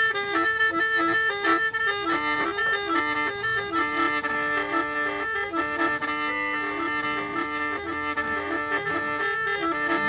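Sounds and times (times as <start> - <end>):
gourd mouth organ playing tune: 0.0 - 10.0.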